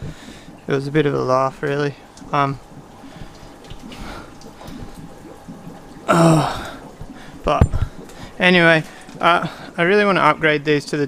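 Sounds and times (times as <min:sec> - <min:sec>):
water trickling and dripping: 0:00.0 - 0:11.0.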